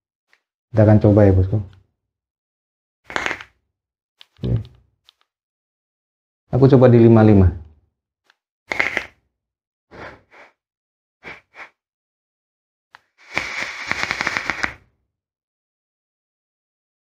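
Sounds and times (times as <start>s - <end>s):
air rushing through vape tank: 3.1s - 3.5s, 8.7s - 9.2s, 13.0s - 14.8s
vape coil sizzling and crackling: 3.1s - 3.5s, 8.7s - 9.2s, 13.2s - 14.8s.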